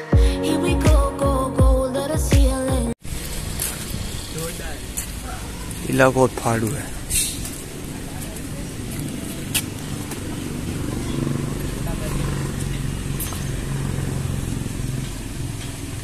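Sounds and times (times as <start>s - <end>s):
engine running with low hum: 7.4s - 16.0s.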